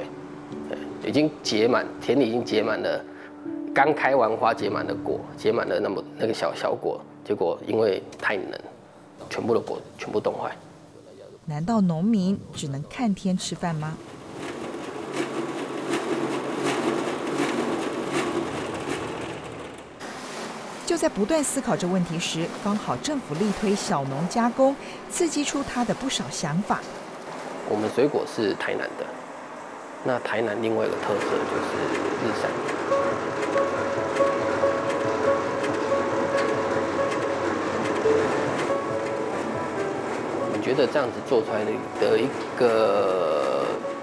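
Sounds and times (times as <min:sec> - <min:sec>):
background music: 0:00.0 - 0:44.0
machine running with regular knock: 0:14.0 - 0:24.6, 0:30.5 - 0:42.8
flour mixer churning: 0:20.1 - 0:24.6.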